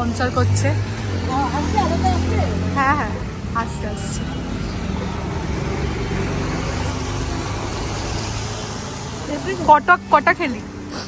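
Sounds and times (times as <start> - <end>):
street traffic noise: 0.0 - 11.0
vehicle engine humming: 0.0 - 11.0.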